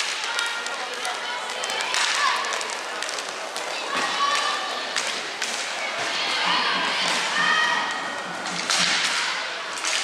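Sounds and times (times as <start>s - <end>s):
skates scraping rink floor: 0.0s - 10.0s.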